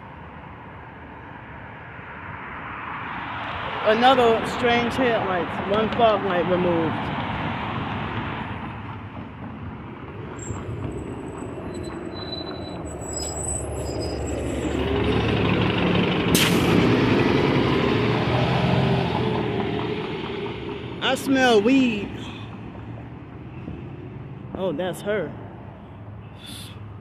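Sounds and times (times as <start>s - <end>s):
city street traffic: 0.0s - 27.0s
large vehicle engine hum: 0.0s - 27.0s.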